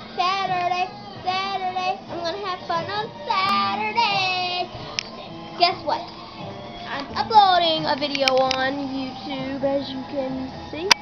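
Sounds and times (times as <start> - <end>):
girl singing unaccompanied: 0.0 - 6.2, 6.8 - 11.0.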